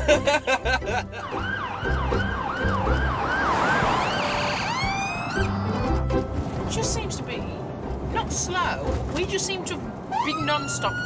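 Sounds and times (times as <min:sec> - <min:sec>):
ambulance siren yelping: 0:01.0 - 0:06.0, 0:10.1 - 0:11.0.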